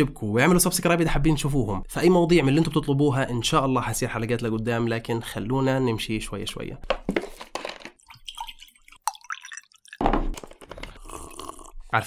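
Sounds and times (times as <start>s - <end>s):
liquid pouring into a mug: 8.0s - 11.8s
person drinking from a mug: 10.7s - 11.9s.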